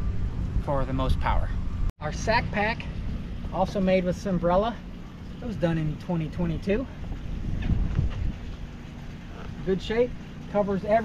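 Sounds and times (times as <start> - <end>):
wind buffeting microphone: 4.8 - 10.4.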